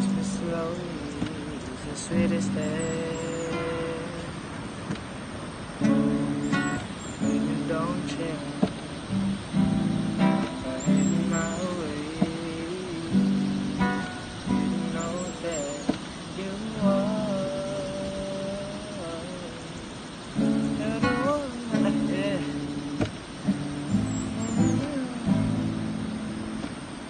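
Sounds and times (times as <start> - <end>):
young man singing: 0.0 - 5.0, 5.8 - 26.3
acoustic guitar strumming: 0.0 - 27.0.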